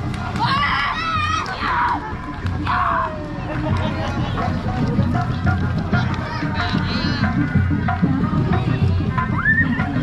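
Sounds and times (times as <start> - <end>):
drum beat: 2.0 - 10.0.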